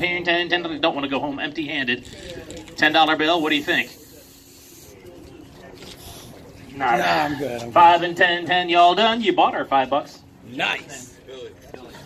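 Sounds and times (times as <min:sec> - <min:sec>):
faint indistinct voices: 0:01.9 - 0:07.8.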